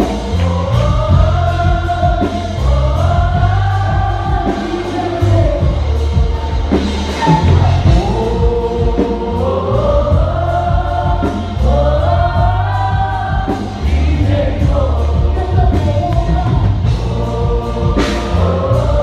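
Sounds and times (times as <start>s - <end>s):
bass guitar: 0.0s - 19.0s
drums and cymbals: 0.0s - 19.0s
singers singing together: 0.0s - 19.0s.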